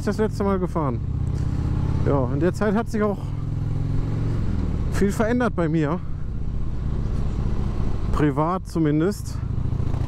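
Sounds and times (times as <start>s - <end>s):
motorcycle engine running: 0.0s - 10.0s
road and wind noise: 0.0s - 10.0s.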